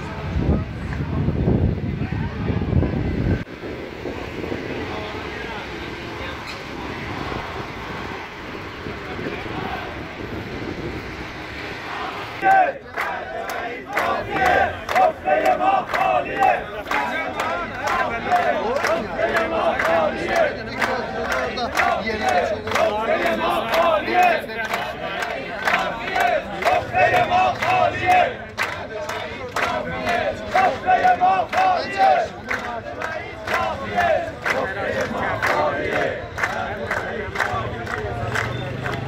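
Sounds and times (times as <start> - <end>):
crowd shouting slogans in unison: 6.3 - 10.7, 11.3 - 39.0.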